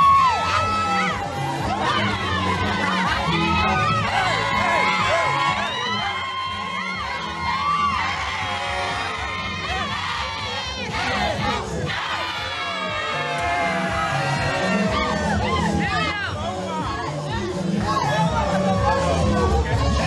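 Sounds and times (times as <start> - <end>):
dance music with bass line: 0.0 - 20.0
guests cheering and shouting: 0.0 - 20.0.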